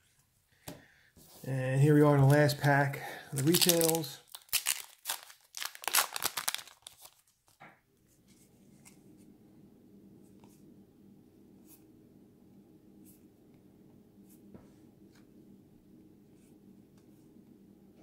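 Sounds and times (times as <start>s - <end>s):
wrapper tearing and crinkling: 3.4s - 7.6s.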